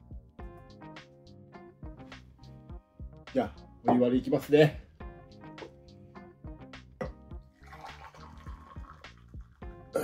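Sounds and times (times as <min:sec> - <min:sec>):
hot water pouring into a cup: 0:07.5 - 0:09.6.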